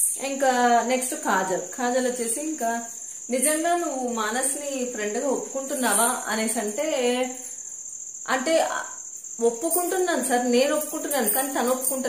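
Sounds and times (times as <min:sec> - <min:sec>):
woman speaking: 0:00.0 - 0:07.4, 0:08.3 - 0:12.0.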